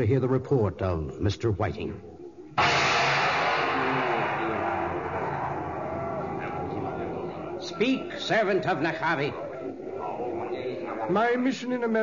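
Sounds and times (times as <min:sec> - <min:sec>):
large gong crash: 0:02.6 - 0:08.2.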